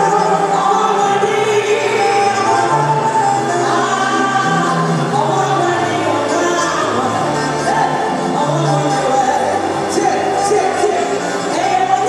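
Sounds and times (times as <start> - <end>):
choir voices: 0.0 - 12.0
woman singing gospel lead: 0.0 - 12.0.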